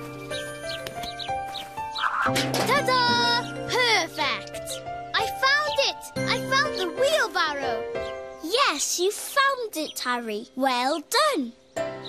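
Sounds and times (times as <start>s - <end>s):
gentle background music: 0.0s - 12.0s
cartoon voices making wordless sounds: 2.7s - 7.8s.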